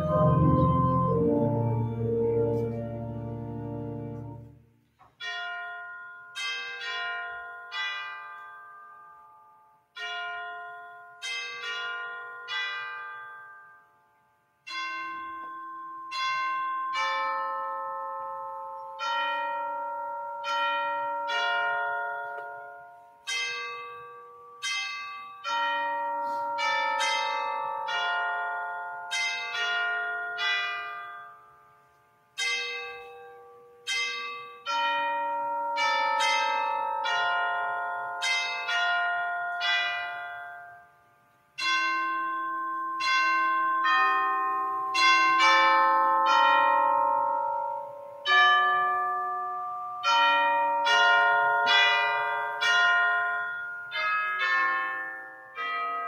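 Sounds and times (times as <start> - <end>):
bells playing slow melody: 0.0 - 56.0.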